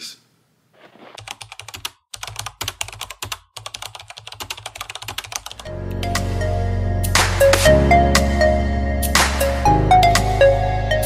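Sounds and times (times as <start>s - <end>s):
music with heavy bass: 5.7s - 11.0s.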